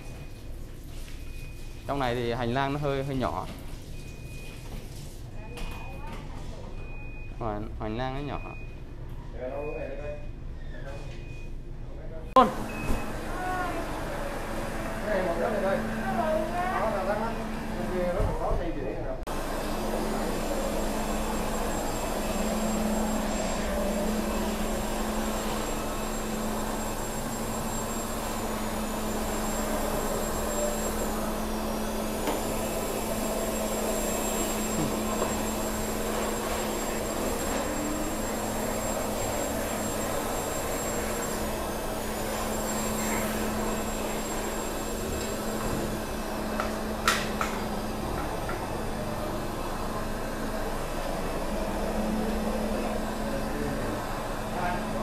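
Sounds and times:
floor scrubber humming with whine: 12.4 - 55.0.

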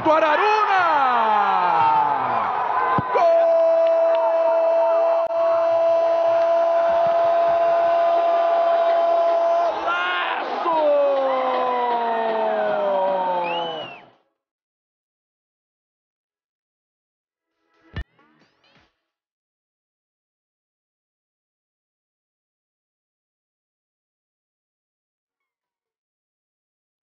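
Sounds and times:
commentator shouting goal cry: 0.0 - 13.4.

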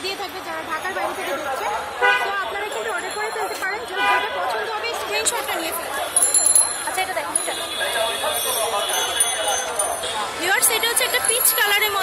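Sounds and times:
street chatter of voices: 0.0 - 12.0.

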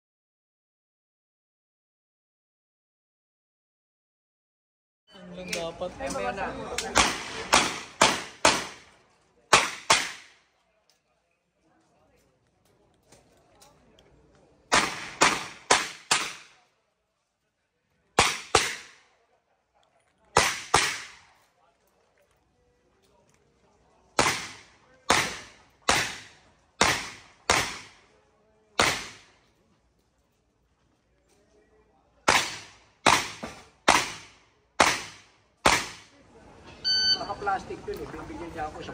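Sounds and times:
handgun shots with echo: 6.8 - 8.9, 9.5 - 10.4, 14.7 - 16.5, 20.4 - 21.2, 24.2 - 28.0, 28.8 - 29.3, 32.2 - 36.1.

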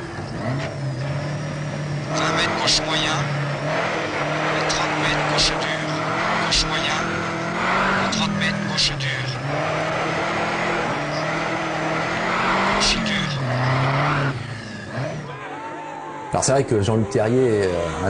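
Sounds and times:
rally car engine revving: 0.0 - 15.6.

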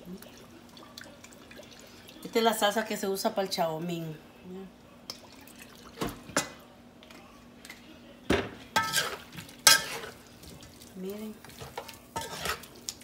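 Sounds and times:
metal spoon against metal pan: 8.8 - 10.2, 11.5 - 12.7.

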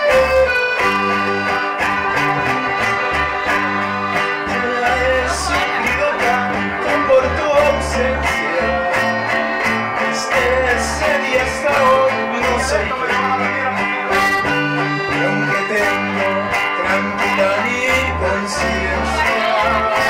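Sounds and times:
button accordion: 0.0 - 20.0
electric bass low notes: 0.0 - 20.0
strummed guitar: 0.0 - 20.0.

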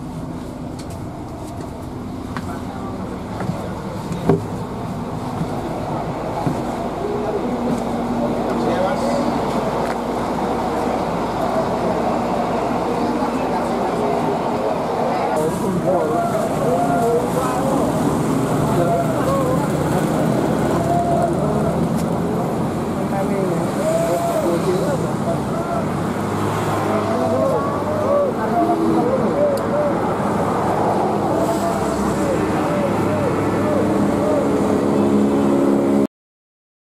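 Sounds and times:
bus diesel engine running: 0.0 - 36.1
indistinct talk of people: 2.3 - 34.5.

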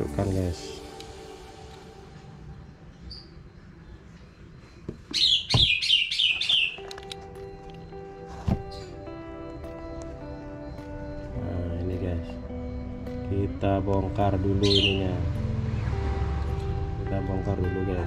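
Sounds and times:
soft background music: 0.0 - 18.0
bird chirping: 1.8 - 17.5.

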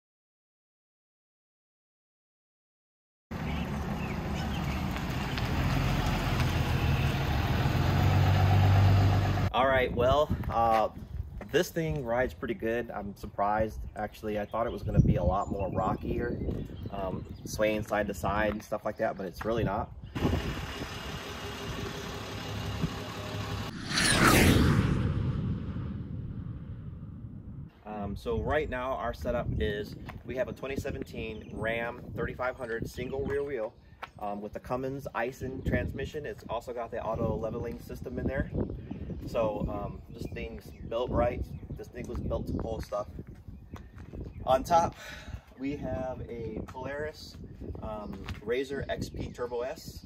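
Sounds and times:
diesel truck driving by: 3.4 - 9.5, 20.2 - 25.0
low rumble: 22.4 - 27.7
whoosh sweeping down: 22.6 - 27.7.

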